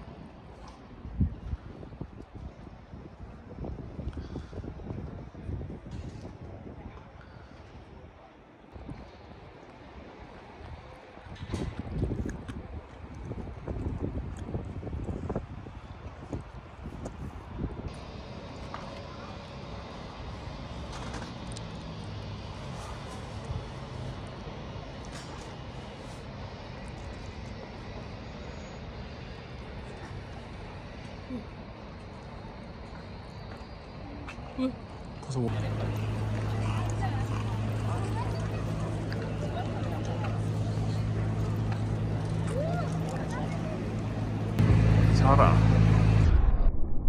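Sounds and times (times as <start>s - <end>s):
wind buffeting microphone: 0.0s - 20.8s.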